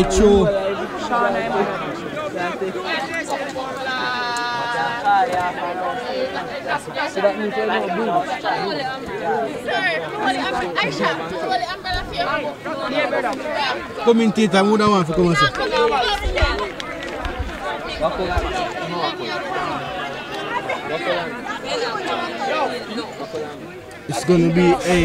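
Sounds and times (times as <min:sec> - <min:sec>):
people chattering and calling out: 0:00.0 - 0:25.0.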